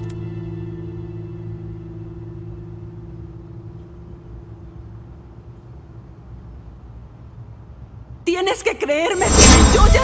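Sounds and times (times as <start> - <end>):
low steady drone: 0.0 - 8.3.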